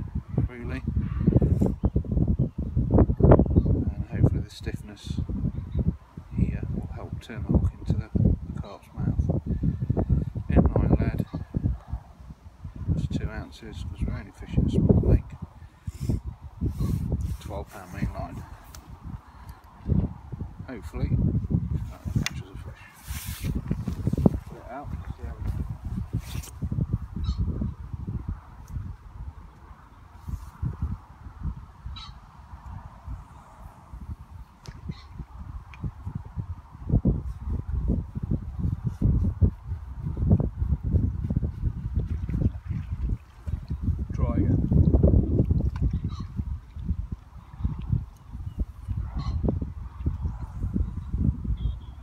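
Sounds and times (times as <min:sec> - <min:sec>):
wind buffeting microphone: 0:00.0 - 0:52.0
waterproof jacket rustling: 0:22.8 - 0:24.7, 0:25.6 - 0:26.6.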